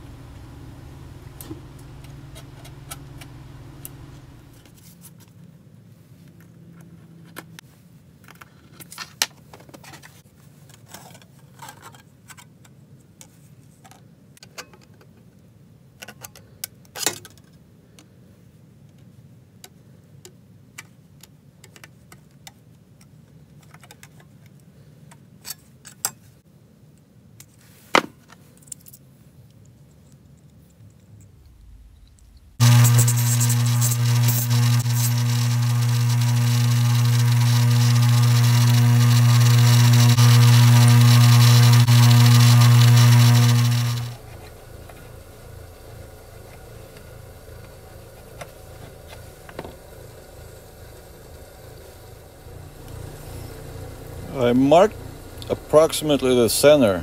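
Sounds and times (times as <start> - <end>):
bench grinder running: 0.0 - 4.8, 32.6 - 57.0
metal grinding hiss: 32.6 - 40.4.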